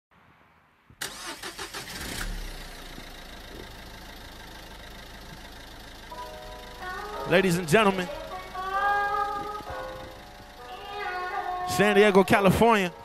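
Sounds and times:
engine cranking: 1.0 - 12.3
engine idling with low hum: 2.3 - 12.4.

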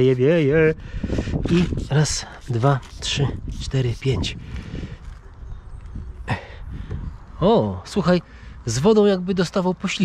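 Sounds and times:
wind rumbling on microphone: 0.0 - 7.6.

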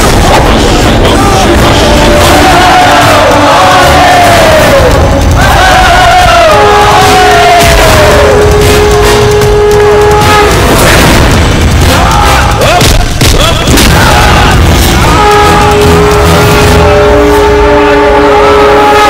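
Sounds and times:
booming hits: 0.0 - 17.6
action film score: 0.0 - 19.0.

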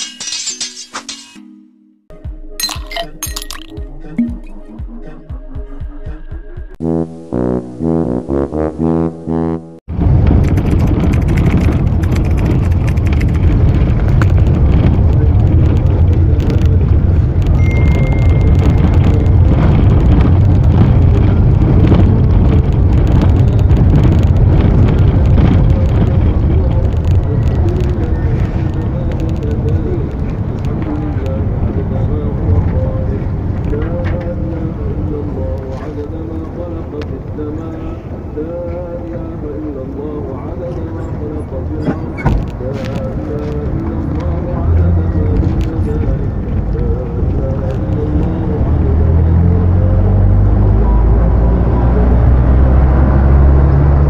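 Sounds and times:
moving vehicle rumble: 9.8 - 54.0
wind on microphone: 9.9 - 54.0.

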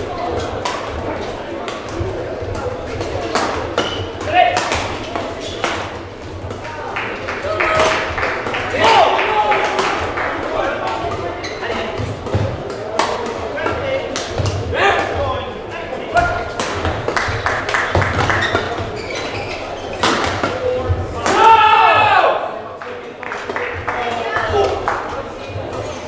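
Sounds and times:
voices echoing in hall: 0.0 - 26.0
rackets striking shuttlecocks: 0.3 - 15.2, 16.2 - 22.1.

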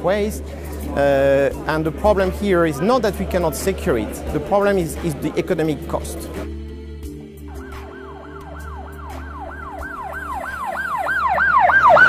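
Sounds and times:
siren yelping: 7.5 - 12.0.

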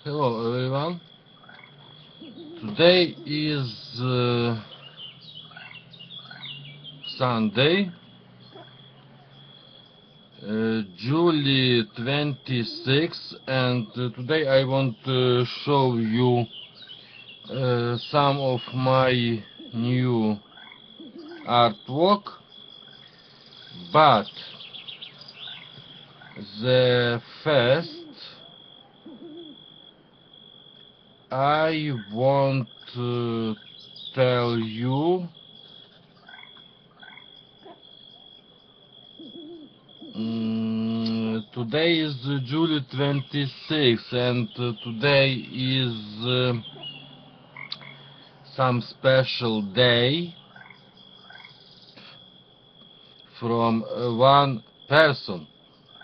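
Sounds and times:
man murmuring: 0.0 - 1.0, 2.6 - 4.7, 7.1 - 7.9, 10.4 - 16.5, 17.5 - 20.4, 21.4 - 22.3, 23.8 - 24.5, 26.4 - 28.4, 31.3 - 33.6, 34.2 - 35.3, 40.1 - 46.6, 48.5 - 50.3, 53.4 - 55.4
faint high-pitched whine: 0.0 - 56.0
faint steady low hum: 0.0 - 56.0
small birds chirping: 0.0 - 56.0.

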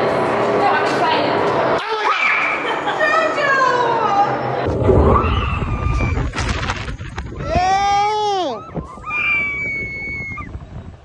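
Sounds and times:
rising scream: 4.7 - 10.5
wind buffeting microphone: 4.7 - 11.0
faint high screams: 7.7 - 10.6.

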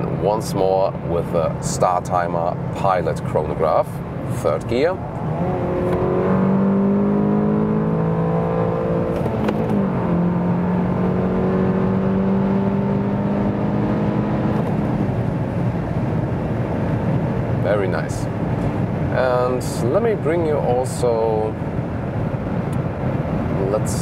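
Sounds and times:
wind and road noise: 0.0 - 24.0
car engine accelerating: 3.9 - 19.1
gear shift click: 5.8 - 6.1, 9.1 - 9.8.

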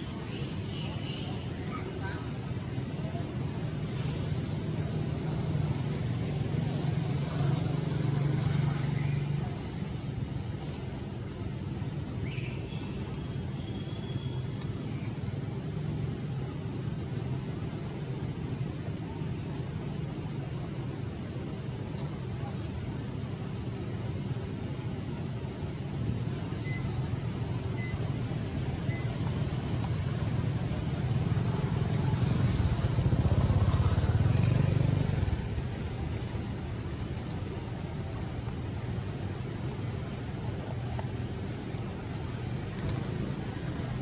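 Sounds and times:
vehicle engine rumble: 0.0 - 44.0
faint high-pitched chirps: 12.2 - 15.2.

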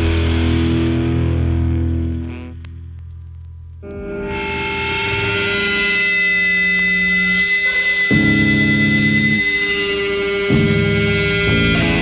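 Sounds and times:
bass guitar: 0.0 - 6.4, 7.1 - 12.0
distorted electric guitar chords: 0.0 - 12.0
high feedback tone: 3.8 - 12.0.

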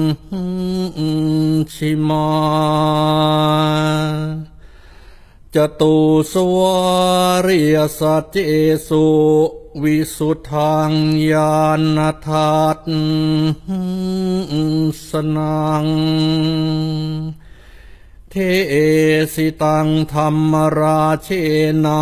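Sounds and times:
monotone chanting: 0.0 - 4.6, 5.5 - 17.4, 18.3 - 22.0.

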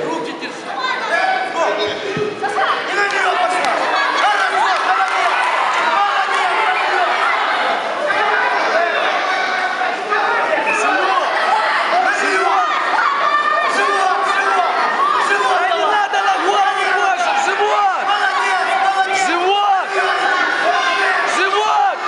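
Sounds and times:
spectators shouting: 0.8 - 22.0.

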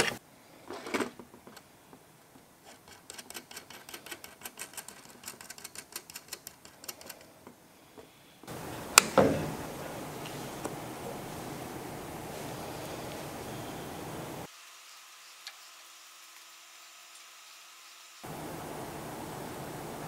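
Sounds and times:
steady hiss: 6.9 - 20.0.

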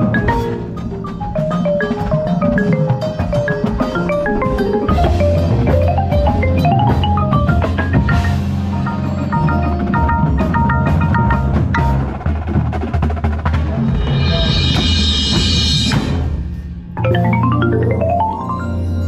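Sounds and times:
marimba runs: 0.0 - 16.0, 16.6 - 19.0.

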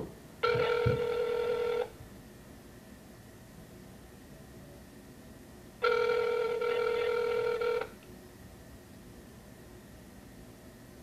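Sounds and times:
telephone ringback tone: 0.4 - 2.0, 5.8 - 8.0.

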